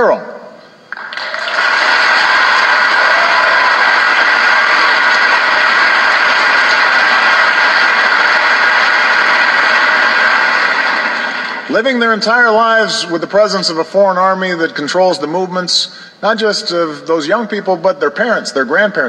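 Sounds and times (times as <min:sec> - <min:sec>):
audience applauding: 0:00.9 - 0:11.7.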